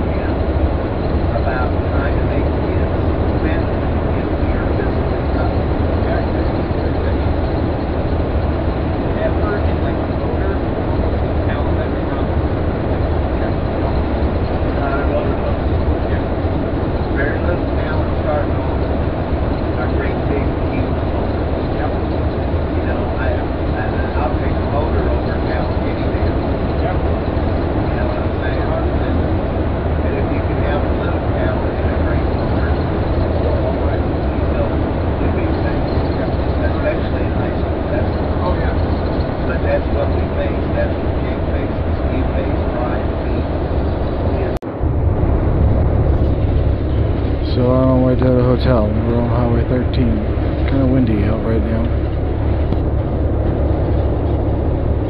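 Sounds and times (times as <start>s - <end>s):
coach engine low rumble: 0.0s - 55.0s.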